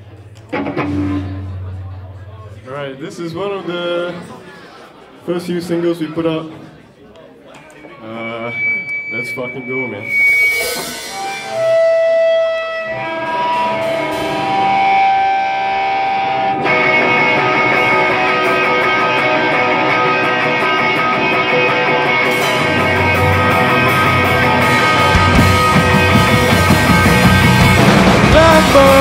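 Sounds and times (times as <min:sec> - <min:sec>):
drums and bass: 0:00.0 - 0:02.3, 0:10.1 - 0:29.0
electric guitar notes: 0:00.2 - 0:02.6, 0:08.3 - 0:29.0.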